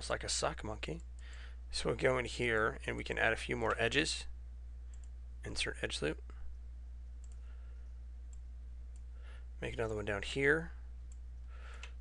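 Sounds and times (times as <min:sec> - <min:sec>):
steady low hum: 0:00.0 - 0:12.0
faint computer mouse clicks: 0:07.2 - 0:07.4.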